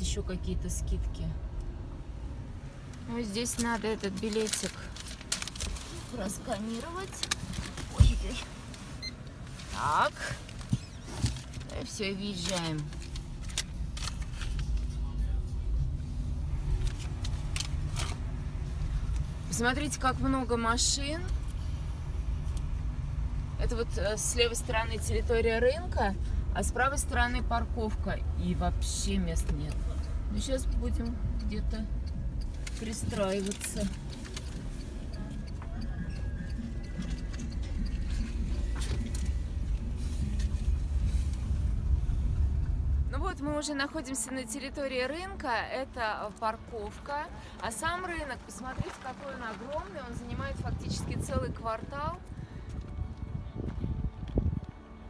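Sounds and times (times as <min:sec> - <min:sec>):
road and tyre rumble: 0:00.0 - 0:55.0.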